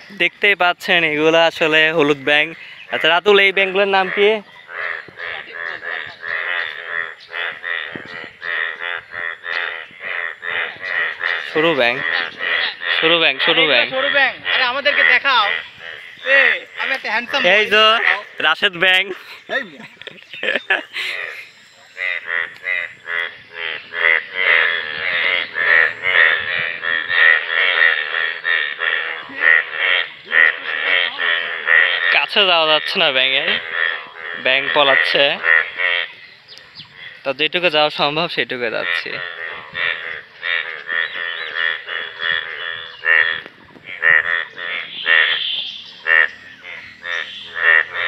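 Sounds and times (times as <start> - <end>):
frogs croaking in chorus: 0.0 - 48.0.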